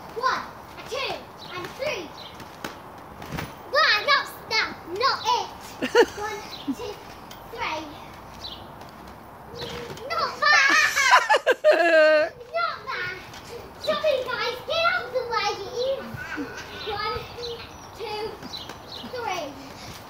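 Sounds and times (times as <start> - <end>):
children calling and chattering: 0.0 - 3.0, 3.6 - 20.0
loud high-pitched child's voice: 9.8 - 11.3, 12.3 - 18.4.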